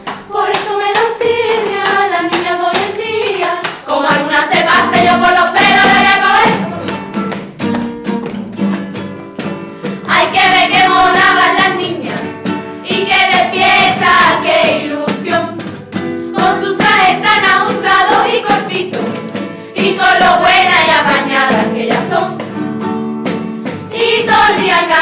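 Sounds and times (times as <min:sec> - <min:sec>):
steady rhythmic beat: 0:00.0 - 0:25.0
women singing in chorus: 0:00.1 - 0:06.9, 0:10.1 - 0:15.7, 0:16.3 - 0:22.4, 0:23.9 - 0:25.0.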